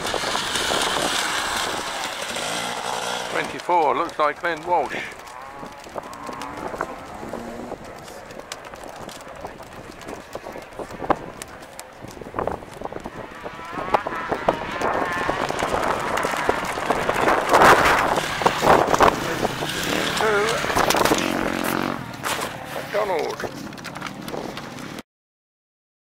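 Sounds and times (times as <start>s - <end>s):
motorcycle engine revving: 0.0s - 24.9s.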